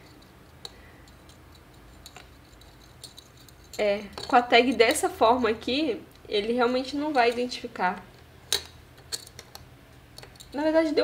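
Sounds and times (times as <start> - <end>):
woman's voice: 3.8 - 8.1, 10.5 - 11.0.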